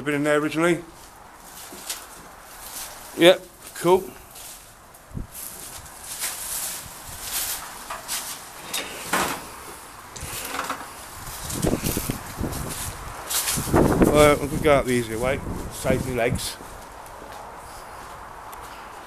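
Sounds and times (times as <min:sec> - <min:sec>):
undergrowth rustling: 0:00.8 - 0:18.9
footsteps crunching over debris: 0:00.9 - 0:08.6, 0:11.1 - 0:18.8
wind buffeting microphone: 0:05.0 - 0:06.0, 0:10.2 - 0:18.4.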